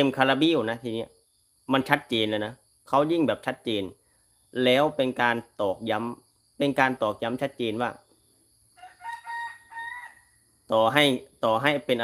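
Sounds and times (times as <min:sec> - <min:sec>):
rooster crowing: 0:08.7 - 0:10.6.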